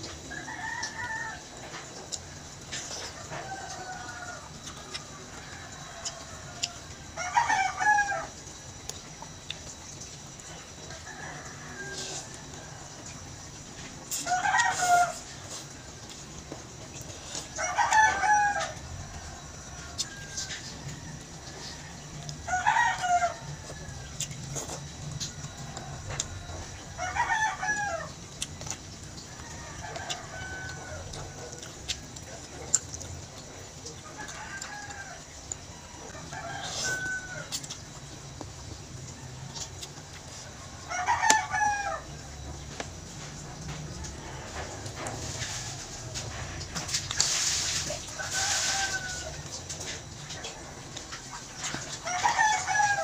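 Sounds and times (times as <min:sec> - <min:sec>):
rooster crowing: 0:00.2 - 0:08.5, 0:10.5 - 0:16.2, 0:17.3 - 0:32.7, 0:33.3 - 0:53.0.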